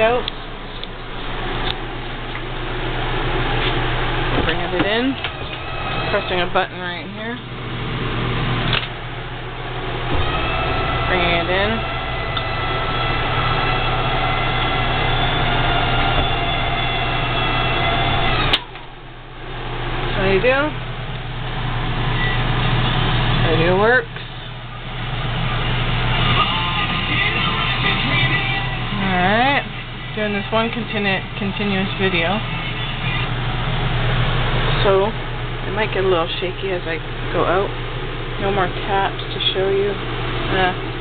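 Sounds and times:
slide-out motor whining: 0:00.4 - 0:19.2.

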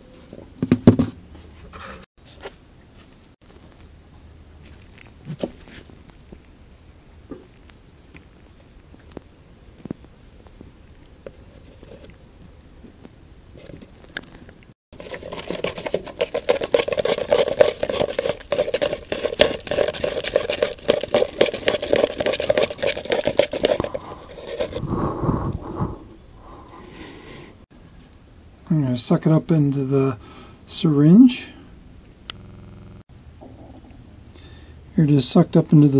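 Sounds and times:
stick scraping inside plastic cup: 0:15.0 - 0:25.0.

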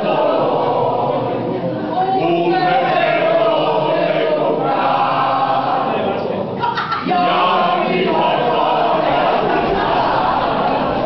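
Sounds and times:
group singing in unison: 0:00.0 - 0:11.0.

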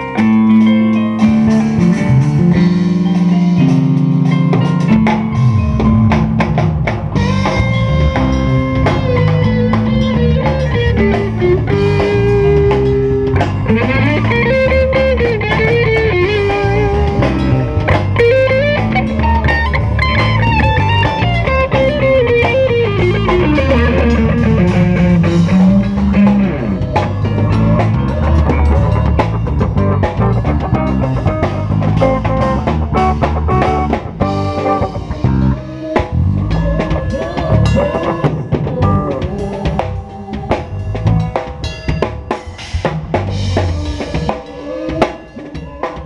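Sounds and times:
bass guitar: 0:00.0 - 0:46.0
drum kit: 0:00.0 - 0:46.0
electric guitar lead melody: 0:00.0 - 0:46.0
keyboard: 0:00.0 - 0:46.0.

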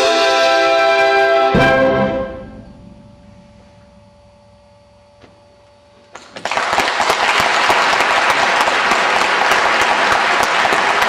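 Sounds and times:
audience applause: 0:06.1 - 0:11.0.

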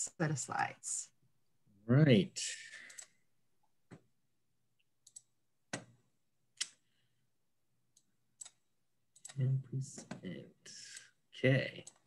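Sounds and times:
man talking: 0:01.8 - 0:02.8, 0:09.3 - 0:10.8, 0:11.4 - 0:11.9
computer mouse clicks: 0:02.8 - 0:03.2, 0:05.0 - 0:05.9.

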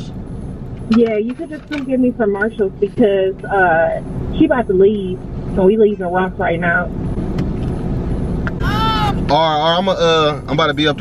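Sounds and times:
car engine idling: 0:00.0 - 0:11.0
person speaking: 0:08.6 - 0:09.3.

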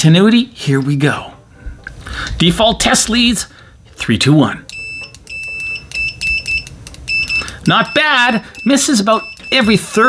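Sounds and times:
high-pitched continuity beeps: 0:04.7 - 0:10.0.

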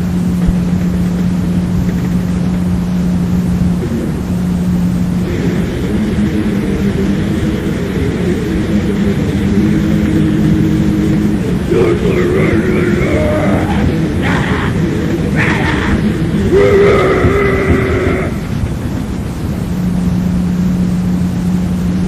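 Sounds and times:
dense noisy wash: 0:00.0 - 0:22.0
heavily distorted guitar: 0:00.0 - 0:22.0.

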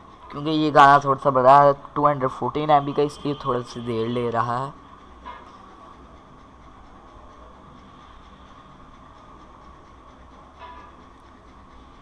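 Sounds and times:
faint steady whine: 0:00.0 - 0:12.0
low hum: 0:00.0 - 0:12.0.

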